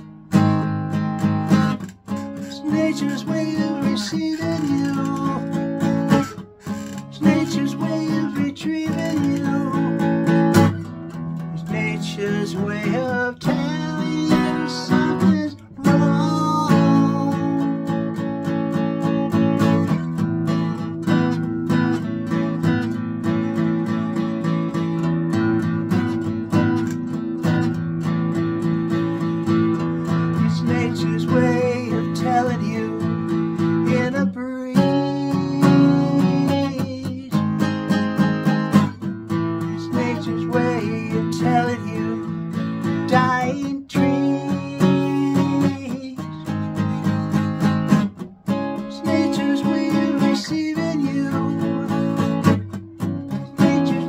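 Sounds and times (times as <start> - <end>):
acoustic guitar chords: 0.0 - 54.0.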